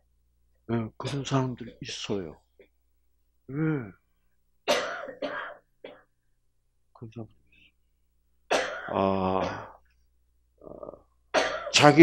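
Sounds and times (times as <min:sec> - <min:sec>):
man coughing: 0:04.7 - 0:06.1, 0:08.5 - 0:09.8, 0:11.3 - 0:12.0.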